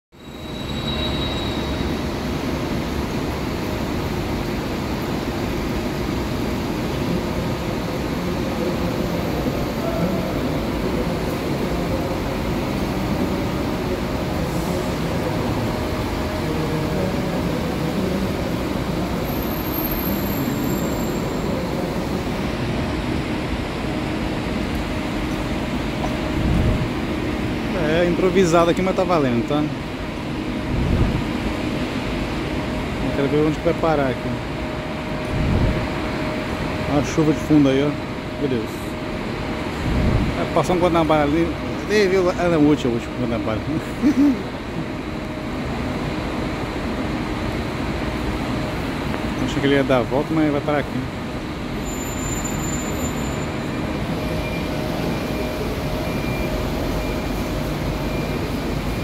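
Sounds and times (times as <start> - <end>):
echoing terminal background noise: 0.2 - 59.0
diesel bus engine rumble: 1.8 - 59.0.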